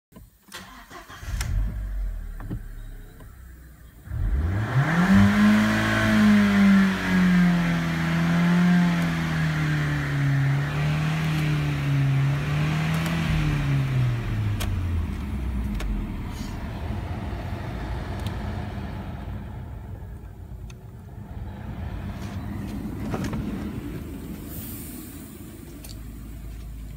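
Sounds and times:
car engine revving: 0:00.6 - 0:26.9.

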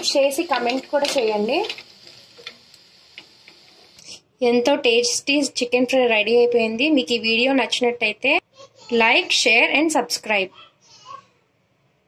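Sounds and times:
faint steady hiss: 0:00.0 - 0:04.4.

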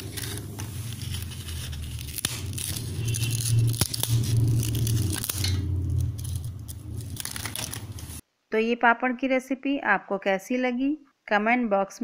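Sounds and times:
crisp papad crackling and snapping: 0:00.0 - 0:08.2
low hum: 0:00.0 - 0:08.2.

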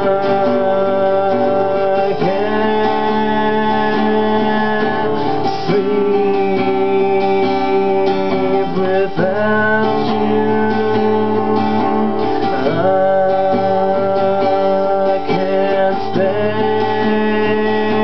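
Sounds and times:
acoustic guitar strummed: 0:00.0 - 0:18.0.

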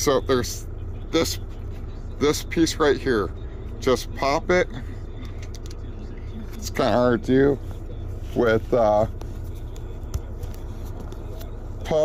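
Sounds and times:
low rumble in truck cab: 0:00.0 - 0:12.0.

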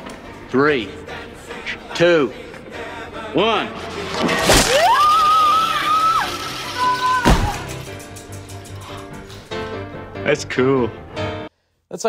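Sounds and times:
film background music: 0:00.0 - 0:11.5
loud crash: 0:03.7 - 0:08.1
person screaming: 0:04.6 - 0:07.7.

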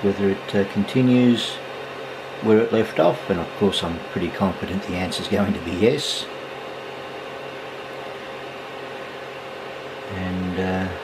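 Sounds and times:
cooling fan whirring: 0:00.0 - 0:11.0.

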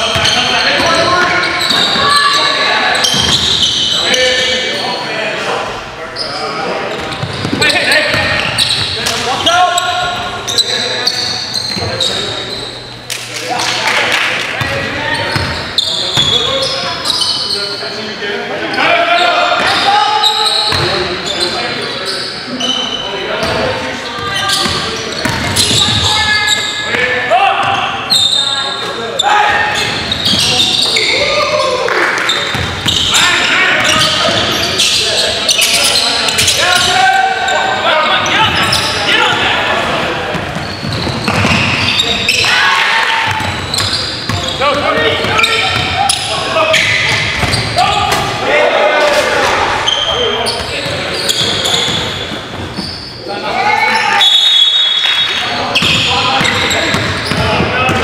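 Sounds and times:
players' indistinct voices: 0:00.0 - 0:58.0
ball bouncing on hardwood court: 0:39.8 - 0:41.9, 0:47.0 - 0:48.3, 0:55.8 - 0:58.0.

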